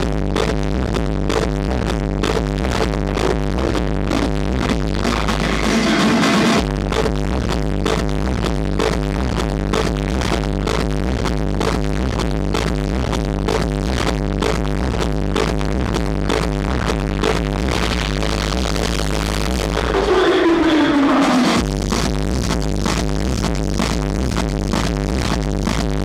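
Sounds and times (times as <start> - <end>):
kick drum: 0.0 - 20.0, 21.6 - 26.0
heavy bass: 0.0 - 26.0
techno music: 0.0 - 26.0.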